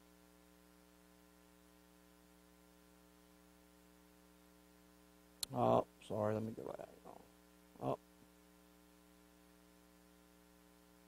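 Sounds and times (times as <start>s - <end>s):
electrical mains hum: 0.0s - 11.0s
person saying oh: 7.8s - 8.0s.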